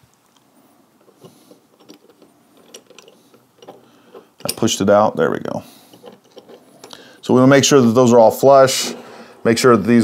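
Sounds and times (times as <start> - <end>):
metal scope mount clicking and scraping: 1.0 - 4.8, 5.8 - 7.0.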